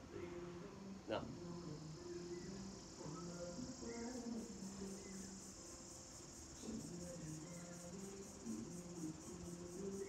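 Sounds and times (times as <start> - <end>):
insect chirring: 1.4 - 10.0.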